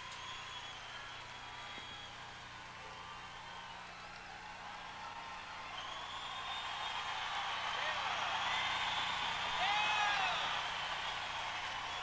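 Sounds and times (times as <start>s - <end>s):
audience applause: 0.0s - 12.0s
low electrical hum: 0.0s - 12.0s.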